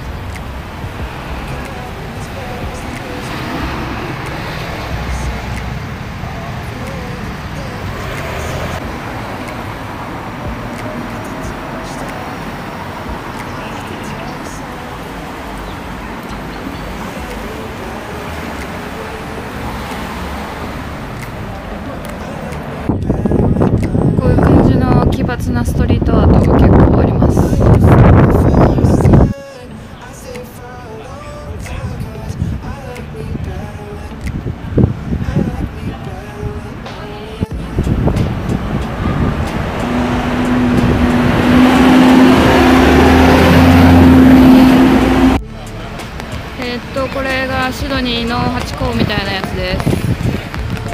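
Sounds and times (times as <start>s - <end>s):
cars passing on street: 0.0s - 50.9s
vehicle engine humming: 0.0s - 50.9s.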